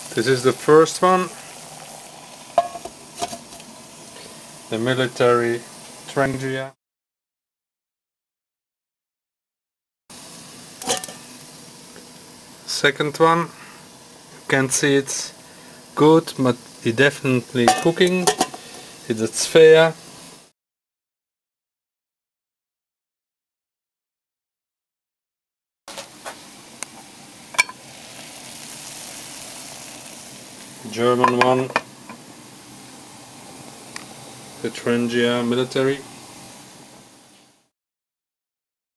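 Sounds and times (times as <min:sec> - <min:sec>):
hissing alcohol stove flame: 0:00.0 - 0:06.6, 0:10.1 - 0:20.5, 0:25.9 - 0:37.7.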